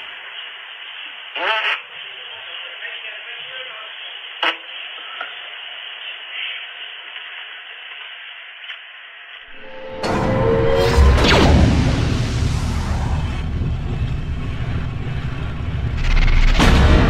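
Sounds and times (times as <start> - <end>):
microphone hiss: 0.0 - 10.1
short rising sound: 9.5 - 17.0.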